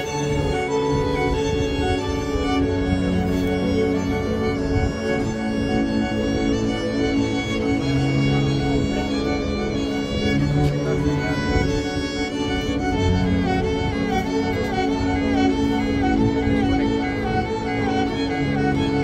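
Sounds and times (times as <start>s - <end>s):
cello long low notes: 0.0s - 19.0s
violin melody: 0.0s - 19.0s.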